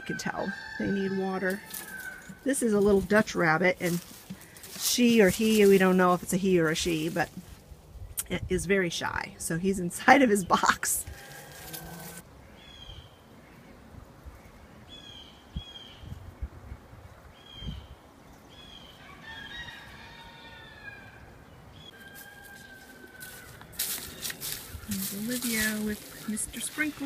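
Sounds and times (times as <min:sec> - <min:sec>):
birds chirping: 0:20.8 - 0:27.0.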